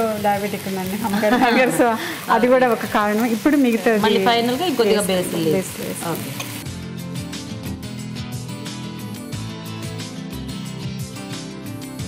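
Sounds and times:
rice sizzling in a pan: 0.0s - 6.8s
background music: 0.0s - 12.0s.

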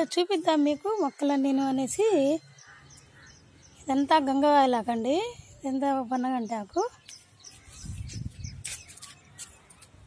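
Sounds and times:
small birds chirping: 0.0s - 10.0s.

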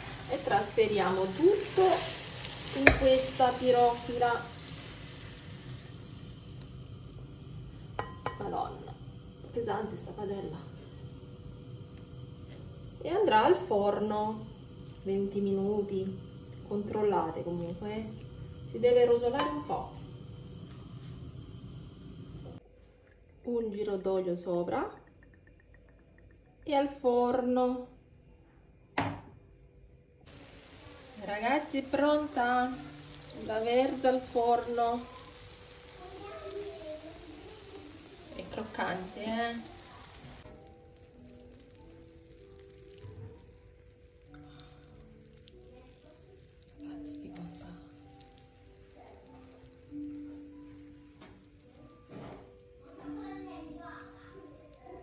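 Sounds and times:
faint steady hiss: 0.0s - 22.6s, 30.3s - 55.0s
low hum: 3.2s - 22.6s.

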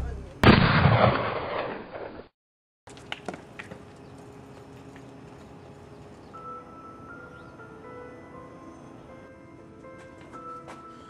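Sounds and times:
gunshot crack with rumbling tail: 0.4s - 2.2s.

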